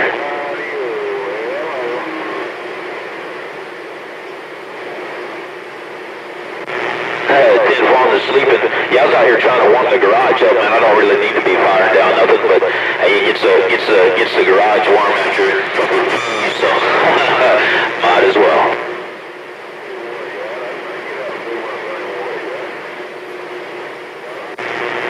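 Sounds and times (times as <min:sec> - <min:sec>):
voice over radio speaker: 0:00.0 - 0:03.5, 0:06.7 - 0:19.0, 0:19.8 - 0:23.0
radio static hiss: 0:00.0 - 0:25.0.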